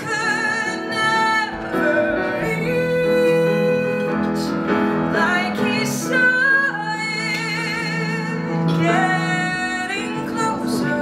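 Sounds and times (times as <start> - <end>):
piano accompaniment: 0.0 - 11.0
woman singing a ballad: 0.0 - 11.0.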